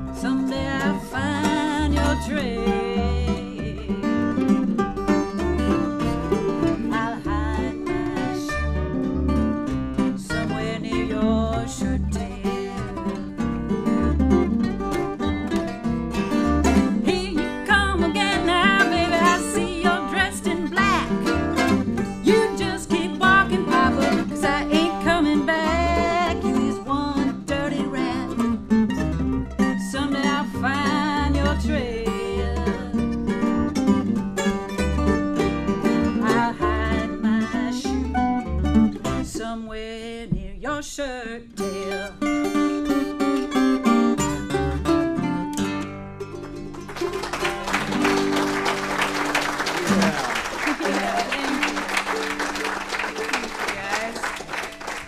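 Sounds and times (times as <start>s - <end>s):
acoustic guitar strumming: 0.0s - 39.8s, 41.6s - 55.0s
upright bass plucking: 0.0s - 53.1s
mandolin picking: 0.0s - 55.0s.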